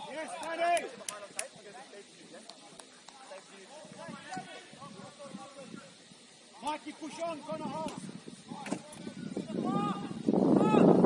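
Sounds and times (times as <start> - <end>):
distant players shouting: 3.7 - 11.0
loud shout: 9.4 - 11.0.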